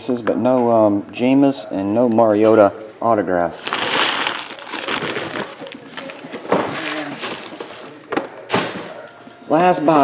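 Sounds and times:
plastic wrapping crinkling: 0:03.6 - 0:07.9.

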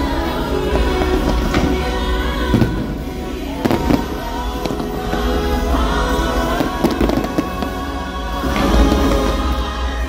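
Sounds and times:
fireworks bursting with bangs: 0:00.0 - 0:10.0
show music: 0:00.0 - 0:10.0.

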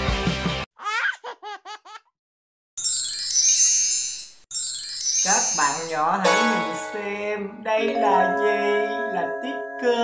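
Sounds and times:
baby laughing: 0:00.8 - 0:02.1.

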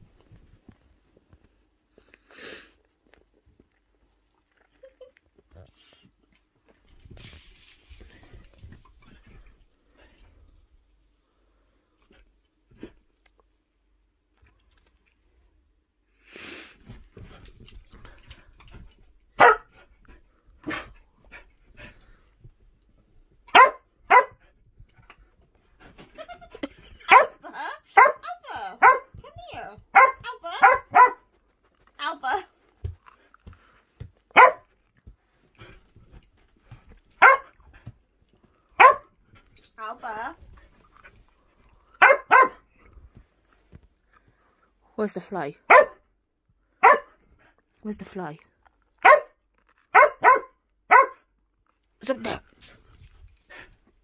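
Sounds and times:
dog barking: 0:19.4 - 0:19.7, 0:23.5 - 0:24.4, 0:27.1 - 0:28.2, 0:28.8 - 0:29.1, 0:29.9 - 0:31.3, 0:34.3 - 0:34.7, 0:37.2 - 0:37.6, 0:38.8 - 0:39.1, 0:42.0 - 0:42.7, 0:45.7 - 0:46.0, 0:46.8 - 0:47.2, 0:49.0 - 0:51.3.

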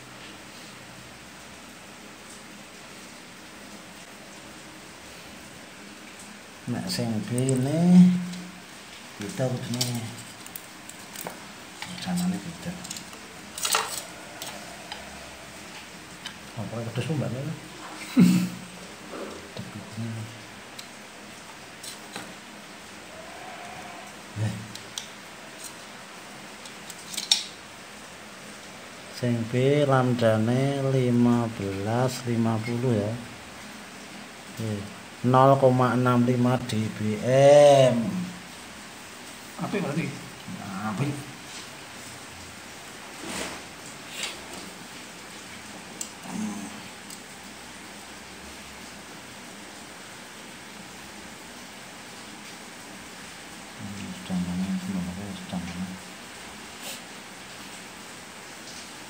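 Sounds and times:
steady background hiss: 0:00.0 - 0:59.0
man humming or murmuring: 0:06.8 - 0:08.6, 0:46.2 - 0:47.0, 0:53.8 - 0:56.0.

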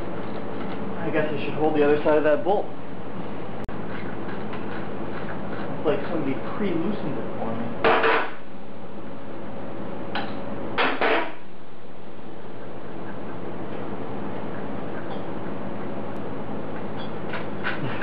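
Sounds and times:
steady hum: 0:00.0 - 0:18.0.

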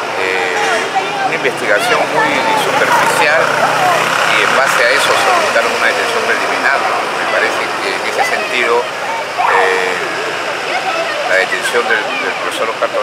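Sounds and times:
vehicle engine running: 0:00.0 - 0:11.6
street traffic: 0:00.0 - 0:13.0
voices talking: 0:00.0 - 0:13.0.

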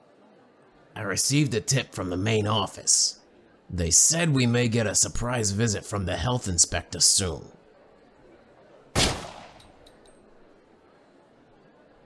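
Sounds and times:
gunshot crack: 0:09.0 - 0:09.7.

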